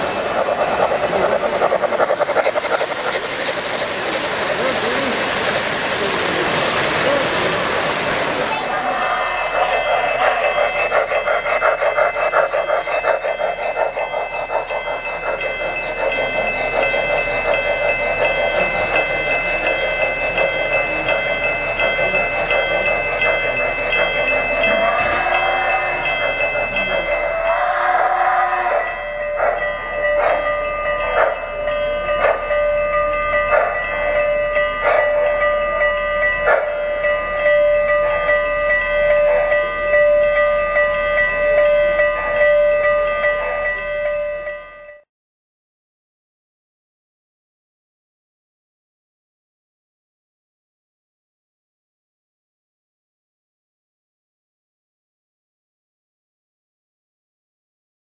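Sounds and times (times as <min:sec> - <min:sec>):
steam locomotive chuffing: 0:00.0 - 0:45.0
bell ringing: 0:08.6 - 0:45.0.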